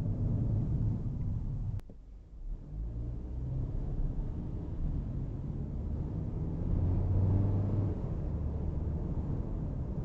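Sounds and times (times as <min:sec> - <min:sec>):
road rumble: 0:00.0 - 0:10.0.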